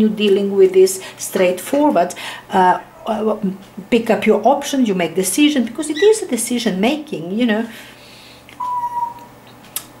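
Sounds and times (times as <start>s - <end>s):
bird whistling a clear note: 8.6s - 9.3s.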